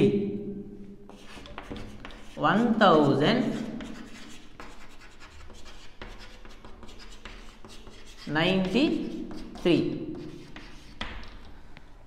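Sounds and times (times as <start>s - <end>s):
chalk scratching on blackboard: 1.1s - 2.8s, 3.4s - 11.6s.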